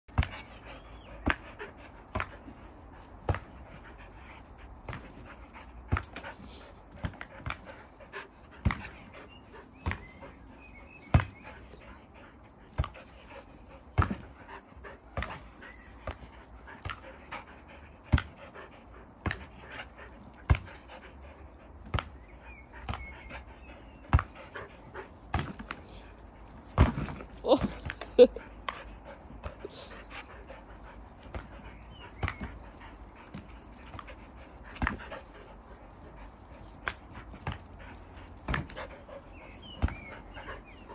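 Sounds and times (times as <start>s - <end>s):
dogs panting: 0.1s - 40.9s.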